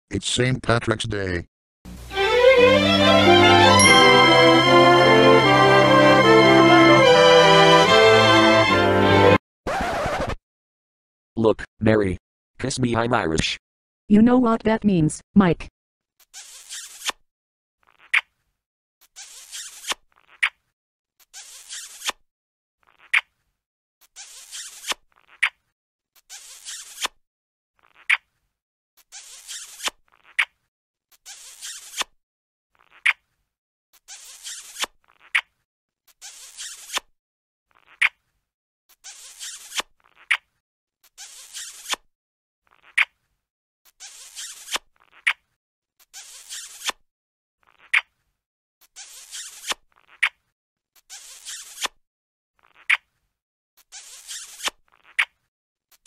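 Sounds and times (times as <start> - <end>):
cartoon kissing smooch and pop: 19.4 - 20.6, 22.9 - 23.4, 24.6 - 25.6, 34.4 - 35.5, 37.8 - 38.2, 42.7 - 43.2, 52.6 - 53.1.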